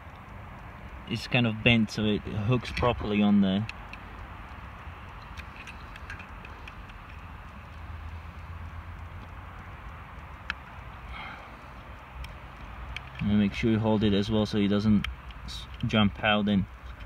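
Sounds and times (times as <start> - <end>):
small metallic clicks: 0.0 - 17.0.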